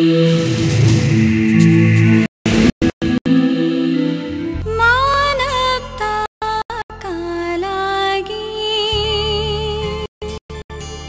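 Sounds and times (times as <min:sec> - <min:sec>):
instrumental music with held notes: 0:03.2 - 0:05.8.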